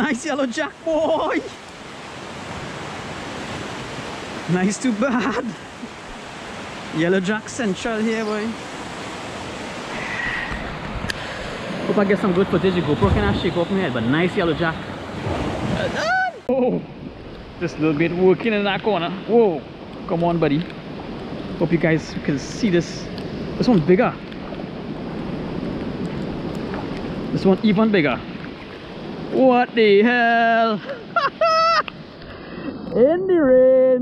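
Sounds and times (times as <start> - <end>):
rain: 0.0 - 32.9
surf breaking on beach: 0.0 - 32.9
wind buffeting microphone: 0.8 - 30.0.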